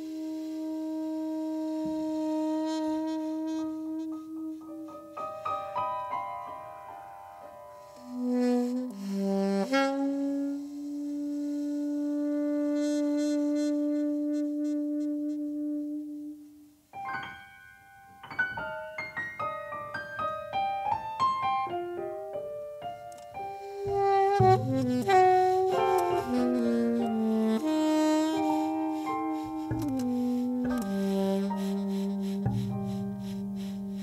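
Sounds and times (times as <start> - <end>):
saxophone: 0.0 - 5.6, 7.8 - 16.7, 23.4 - 34.0
acoustic piano: 0.0 - 16.3, 16.9 - 34.0.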